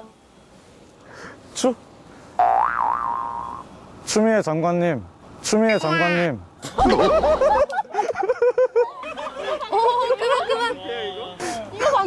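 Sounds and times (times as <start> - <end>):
cartoon boing: 2.4 - 3.6.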